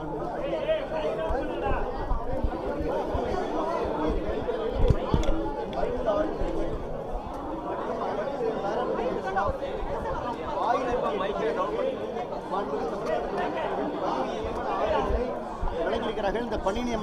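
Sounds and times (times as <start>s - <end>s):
voices chattering: 0.0s - 17.0s.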